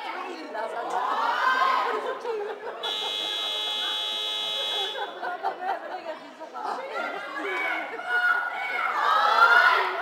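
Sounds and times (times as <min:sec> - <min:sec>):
scoreboard buzzer: 0:02.8 - 0:05.0.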